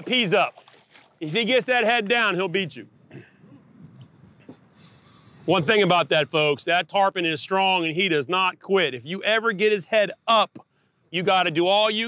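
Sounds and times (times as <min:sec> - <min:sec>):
water noise: 0:00.0 - 0:03.0
faint wind: 0:00.0 - 0:12.0.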